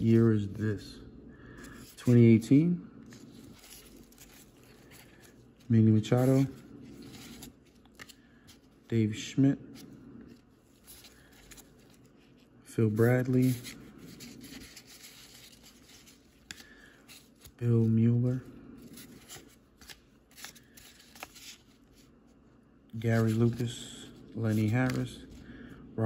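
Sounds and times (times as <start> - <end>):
cards rustling: 1.4 - 25.7
cards scraping: 3.0 - 8.8, 9.7 - 22.2, 23.0 - 25.4.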